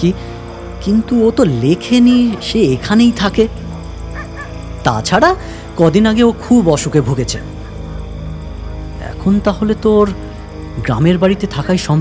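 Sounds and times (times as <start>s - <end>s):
low background music drone: 0.0s - 12.0s
dog yelping whine: 4.1s - 4.6s.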